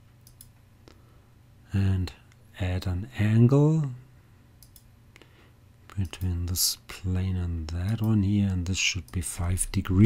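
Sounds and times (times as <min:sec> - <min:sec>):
faint computer mouse clicks: 0:00.2 - 0:01.0, 0:04.6 - 0:05.3.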